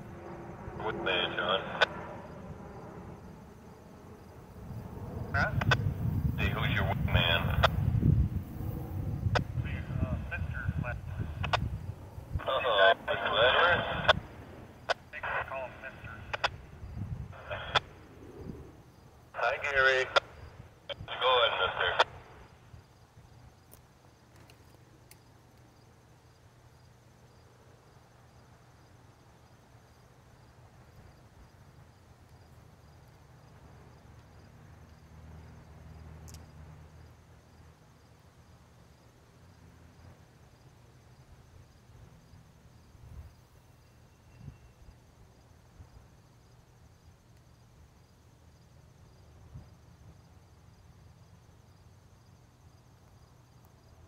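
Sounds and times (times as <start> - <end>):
low steady rumble: 0.0 - 22.7
man's voice over scanner radio: 0.7 - 2.0, 5.3 - 7.8, 9.4 - 11.7, 12.3 - 14.2, 14.9 - 16.6, 17.3 - 17.9, 19.3 - 22.5.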